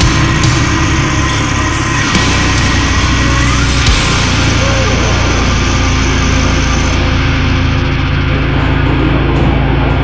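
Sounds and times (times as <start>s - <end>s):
death metal music: 0.0s - 10.0s.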